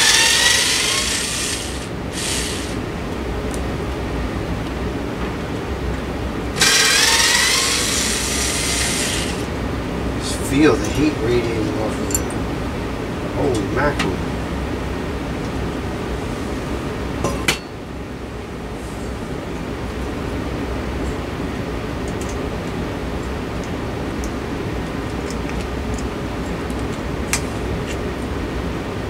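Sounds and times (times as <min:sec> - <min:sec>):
steady background noise: 0:00.0 - 0:29.0
glass and metal clinks: 0:12.0 - 0:12.4.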